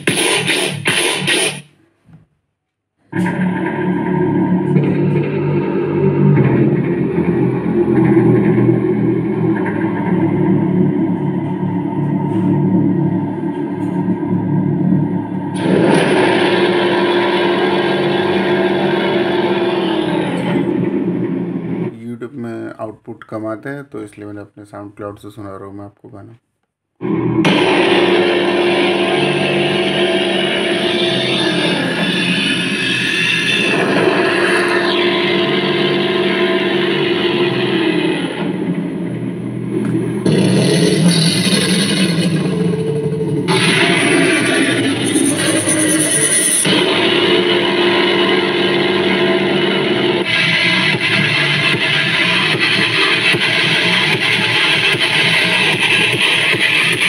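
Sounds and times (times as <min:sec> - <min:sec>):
bass-heavy music from speaker: 0:00.0 - 0:01.7, 0:03.1 - 0:21.9, 0:27.0 - 0:57.0.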